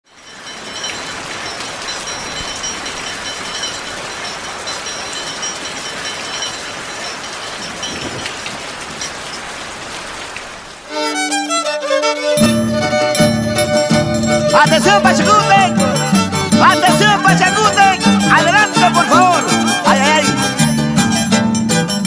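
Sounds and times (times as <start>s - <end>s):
violin and harp music: 10.9s - 22.0s.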